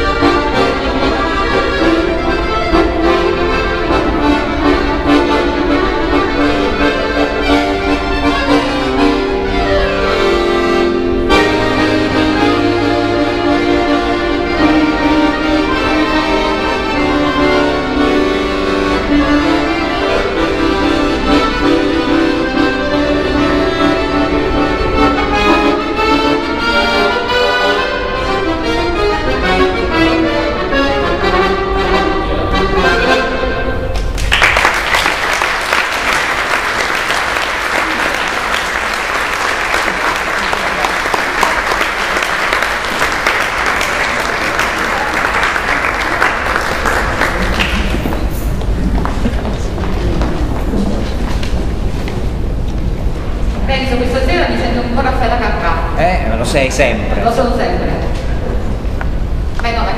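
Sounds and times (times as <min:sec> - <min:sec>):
button accordion playing: 0:00.0 - 0:34.0, 0:34.7 - 0:48.8
audience applause: 0:34.0 - 0:50.0.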